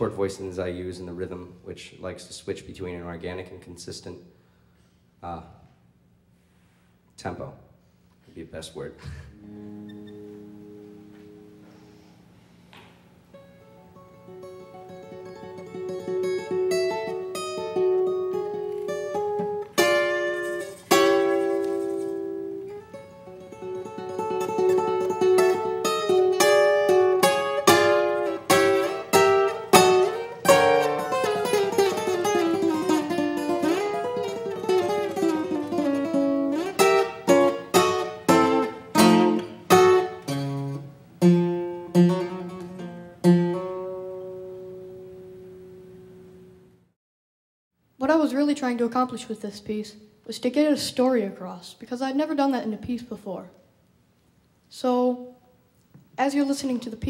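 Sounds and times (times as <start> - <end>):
solo acoustic guitar: 9.3 - 46.8.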